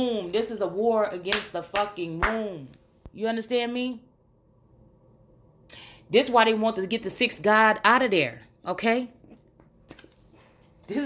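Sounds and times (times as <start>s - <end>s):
woman talking: 0.0s - 4.1s, 6.1s - 9.2s.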